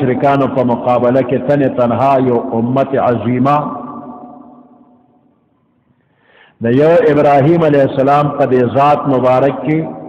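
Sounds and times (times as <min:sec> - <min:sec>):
amplified voice echo: 0:00.0 - 0:10.0.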